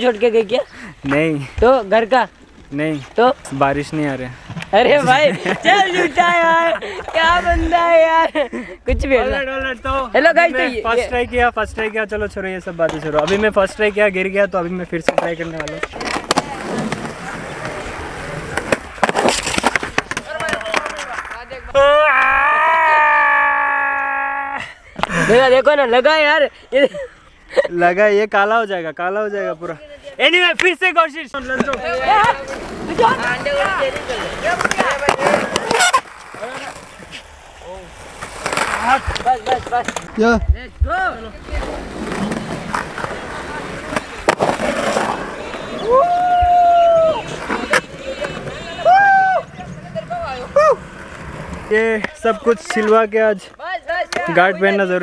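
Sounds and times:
skateboard wheels rolling on concrete: 0:00.0 - 0:26.5, 0:27.8 - 0:55.0
skateboard clacks: 0:15.0 - 0:21.6, 0:31.4 - 0:40.2, 0:41.5 - 0:50.4, 0:53.6 - 0:54.4.

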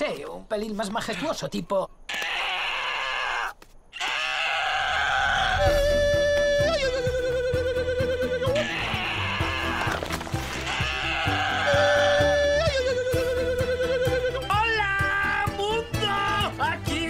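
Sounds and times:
cartoon bird screeching calls: 0:02.1 - 0:05.8.

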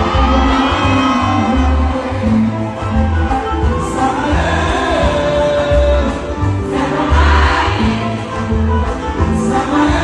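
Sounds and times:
voices singing together: 0:03.8 - 0:10.0.

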